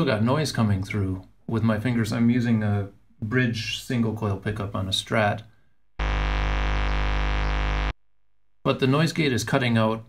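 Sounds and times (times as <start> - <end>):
distorted electric guitar hum: 6.0 - 8.0.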